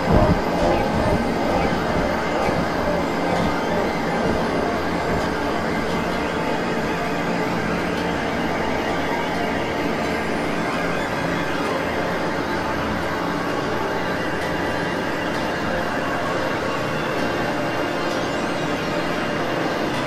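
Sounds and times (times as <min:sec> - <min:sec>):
layered processed music drone: 0:00.0 - 0:20.0.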